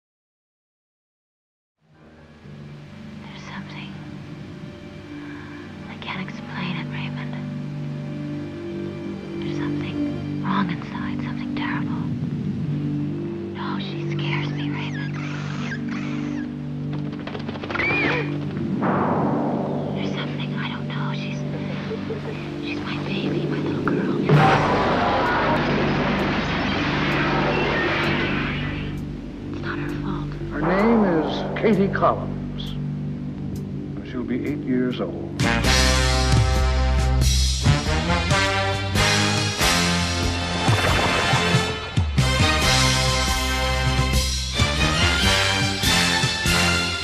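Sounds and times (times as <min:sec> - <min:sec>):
low steady drone: 0:01.9 - 0:17.2, 0:18.4 - 0:46.9
person whispering: 0:03.2 - 0:04.0, 0:13.6 - 0:15.2, 0:19.9 - 0:21.7, 0:22.3 - 0:24.3, 0:29.5 - 0:31.9.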